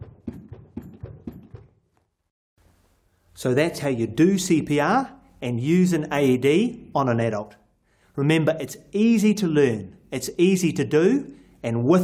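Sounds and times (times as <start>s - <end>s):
steady clicking beat: 0.0s - 1.9s.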